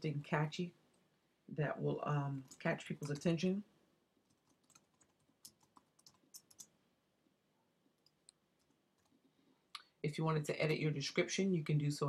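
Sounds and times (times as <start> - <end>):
computer keyboard typing: 2.5 - 3.3, 4.2 - 6.7.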